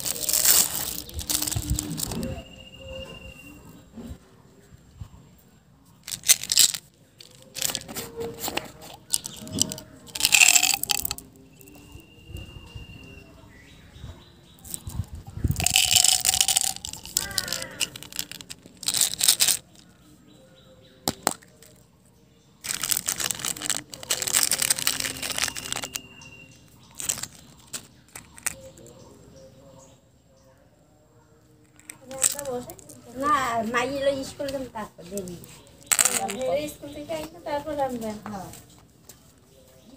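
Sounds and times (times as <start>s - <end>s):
hands handling plastic containers: 0.0s - 2.3s, 6.0s - 11.7s, 15.5s - 19.9s, 22.6s - 26.1s, 26.9s - 28.7s, 31.7s - 33.0s, 35.2s - 37.3s.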